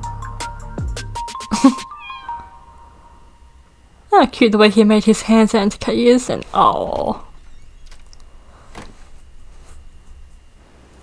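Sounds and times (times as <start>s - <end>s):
music: 0.0s - 3.3s
cat meow: 1.9s - 2.6s.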